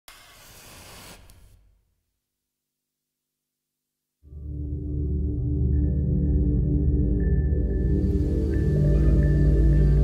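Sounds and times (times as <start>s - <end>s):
steady hiss: 7.8s - 10.0s.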